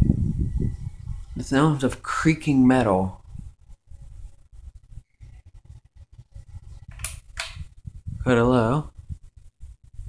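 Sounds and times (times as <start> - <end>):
ceiling fan creaking and ticking: 6.5 - 7.8.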